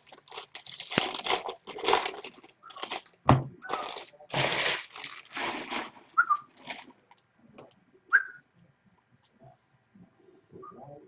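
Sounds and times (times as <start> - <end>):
card packs being torn open: 0.0 - 6.9
wrapper and cards rustling: 0.0 - 7.0.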